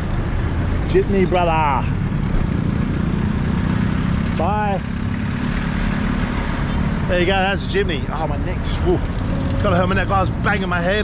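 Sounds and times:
street traffic noise: 0.0s - 11.0s
vehicle engine droning: 0.0s - 11.0s.

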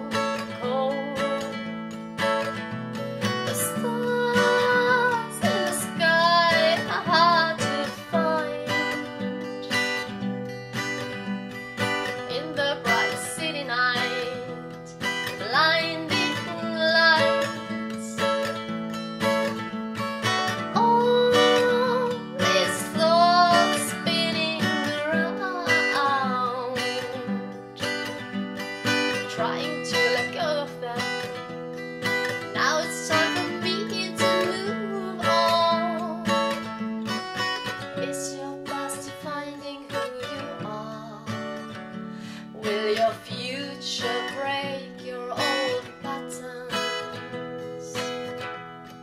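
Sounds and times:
woman singing slow song: 0.0s - 2.6s, 3.2s - 10.2s, 11.8s - 18.7s, 20.3s - 49.0s
strummed acoustic guitar: 0.0s - 49.0s.

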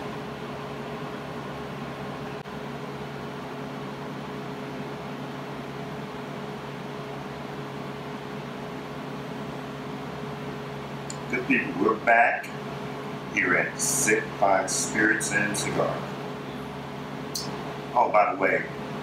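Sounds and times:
ventilation hum: 0.0s - 19.0s.

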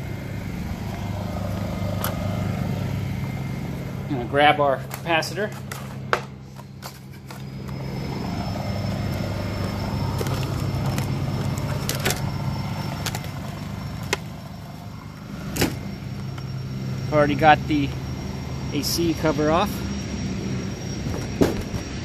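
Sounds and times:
low mechanical hum: 0.0s - 22.0s.

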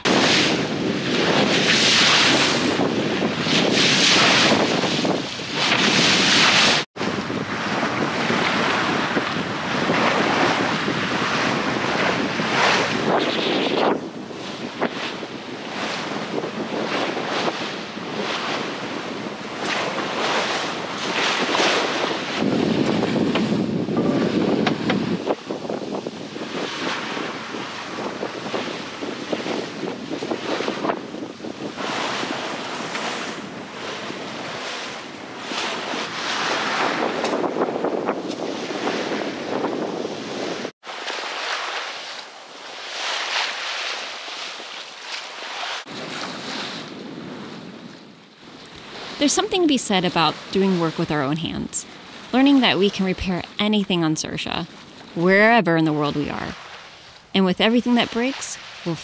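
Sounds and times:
wind buffeting microphone: 0.0s - 40.7s, 45.9s - 53.6s
water rushing along hull: 0.0s - 59.0s.

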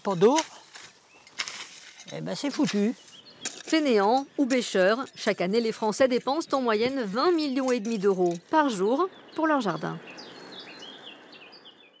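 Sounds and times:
small birds chirping: 0.0s - 12.0s
soft outdoor hiss: 0.0s - 12.0s.

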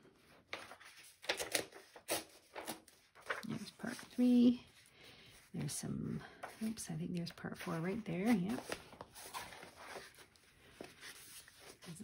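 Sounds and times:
book pages turning: 0.0s - 12.0s.

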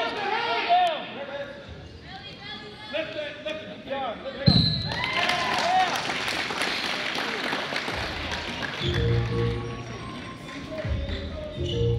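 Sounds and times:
whistle blast: 4.5s - 5.0s.

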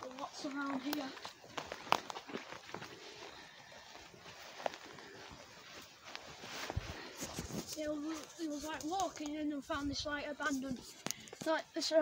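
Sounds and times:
footsteps through rough grass: 0.0s - 12.0s.

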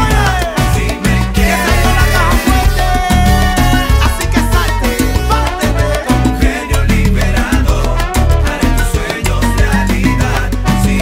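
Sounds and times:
instrumental salsa music: 0.0s - 11.0s.

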